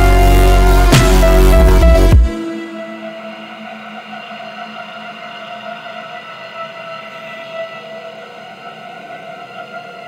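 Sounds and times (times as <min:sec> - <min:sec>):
sustained synthesizer drone: 0:00.0 - 0:10.0.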